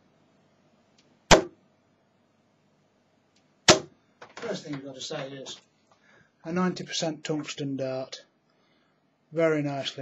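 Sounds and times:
dart striking dartboard: 0:01.3 - 0:01.6, 0:03.7 - 0:04.0.

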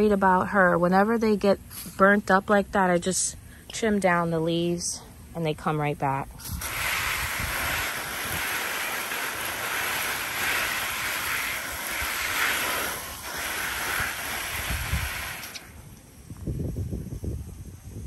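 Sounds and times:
hose spraying water on leaves: 0:06.4 - 0:15.7.

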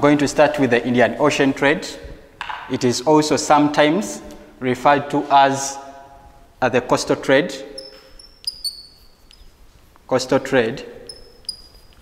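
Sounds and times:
chalk squeaking: 0:07.7 - 0:12.0
chalk tapping on blackboard: 0:07.8 - 0:09.7, 0:11.0 - 0:12.0.

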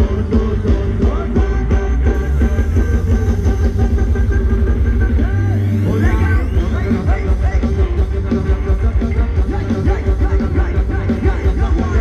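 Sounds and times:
live band dance music: 0:00.0 - 0:12.0.

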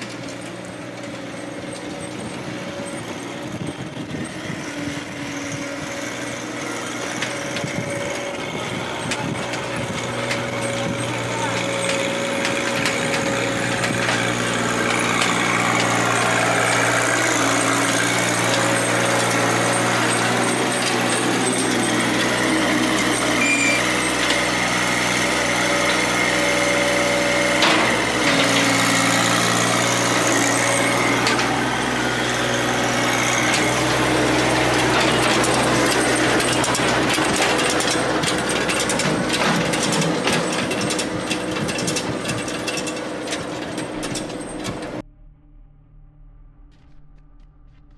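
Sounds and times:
tractor engine running: 0:00.0 - 0:45.0.

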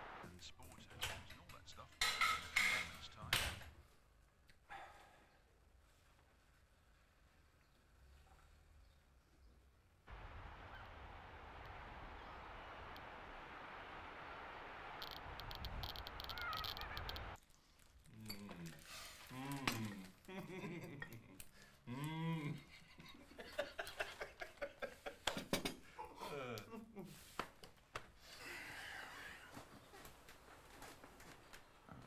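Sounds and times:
wind: 0:10.0 - 0:17.4
sharp clicks: 0:15.0 - 0:17.4.

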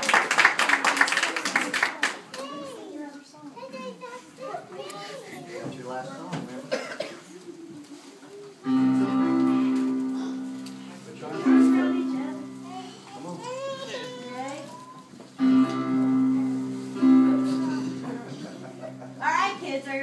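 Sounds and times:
children chattering: 0:00.9 - 0:20.0
sustained instrument chord: 0:08.7 - 0:13.4, 0:15.4 - 0:20.0.

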